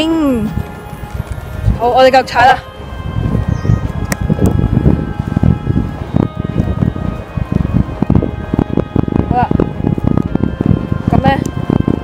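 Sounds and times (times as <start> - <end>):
faint background music: 0.0 - 12.0
wind buffeting microphone: 0.0 - 12.0.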